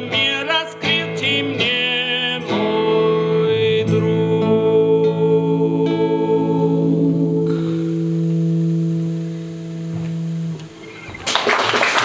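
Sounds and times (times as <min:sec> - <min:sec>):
acoustic guitar and voices chord: 0:00.0 - 0:11.2
audience applause: 0:10.9 - 0:12.0.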